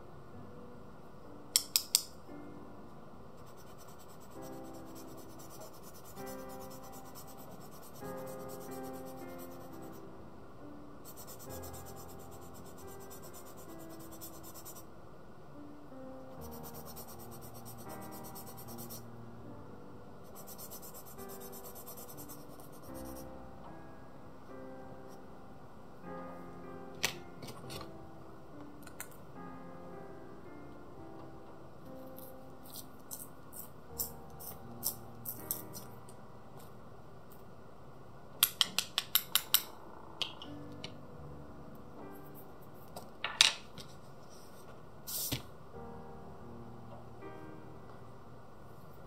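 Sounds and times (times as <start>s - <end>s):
background music: 0.0s - 37.6s, 38.2s - 49.0s.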